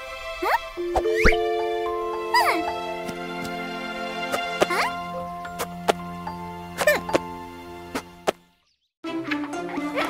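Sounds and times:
light background music: 0:00.0 - 0:08.3.

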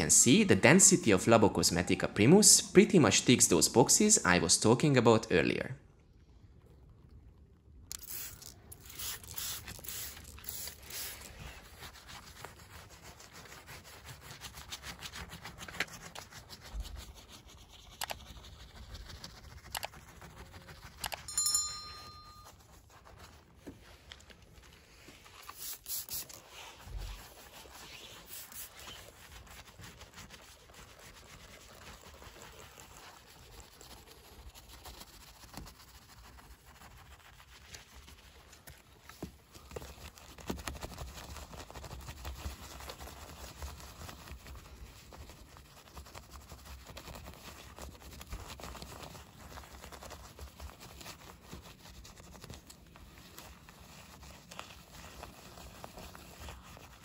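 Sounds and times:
soft brush scrubbing: 0:07.9 - 0:57.0
short high ringing tone: 0:21.3 - 0:22.6.

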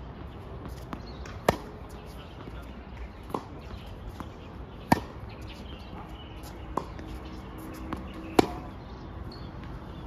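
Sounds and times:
racket hitting tennis ball: 0:00.6 - 0:02.6, 0:03.2 - 0:05.7, 0:06.4 - 0:08.8
tennis ball bounce: 0:00.6 - 0:05.4, 0:06.7 - 0:08.8.

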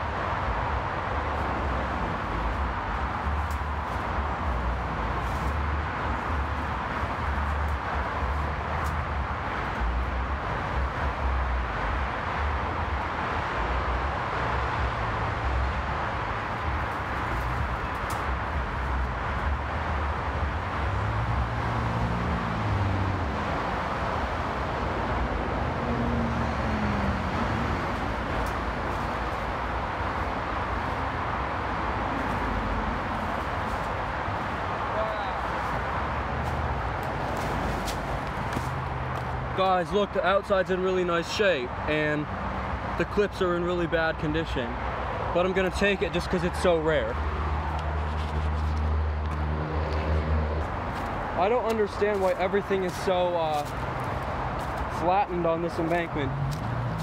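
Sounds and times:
highway traffic rushing: 0:00.0 - 0:57.0
low traffic rumble: 0:00.0 - 0:57.0.

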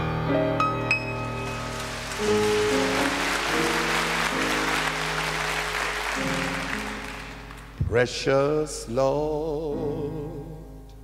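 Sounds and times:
audience applauding: 0:01.1 - 0:07.8.

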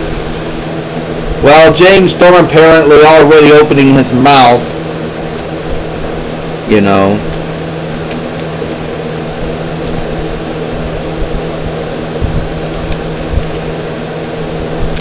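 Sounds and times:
steady mechanical hum: 0:00.0 - 0:15.0.

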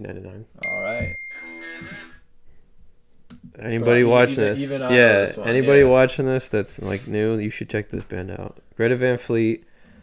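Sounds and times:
high bell-like ding: 0:00.6 - 0:01.8.

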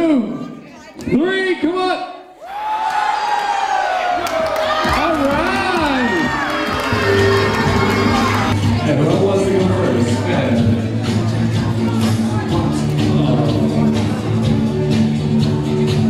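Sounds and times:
women shrieking and cheering: 0:02.4 - 0:08.6
music: 0:04.2 - 0:16.0.

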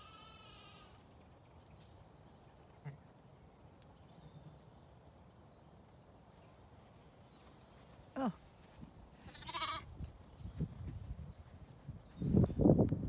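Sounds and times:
lamb bleating: 0:00.0 - 0:00.9, 0:09.2 - 0:09.9.

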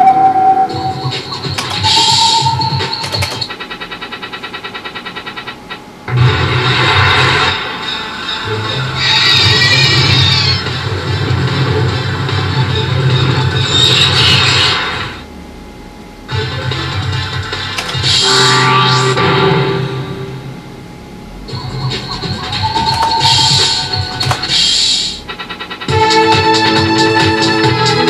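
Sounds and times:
slot machine electronic music: 0:00.1 - 0:06.4, 0:07.3 - 0:14.4, 0:16.3 - 0:20.6, 0:21.5 - 0:28.0
fast pulsing beeps: 0:00.7 - 0:04.5, 0:21.5 - 0:25.2
low hum: 0:15.0 - 0:25.7.

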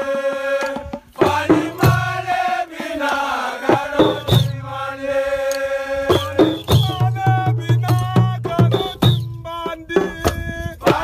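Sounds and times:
drumming: 0:00.0 - 0:05.0, 0:06.0 - 0:11.0.

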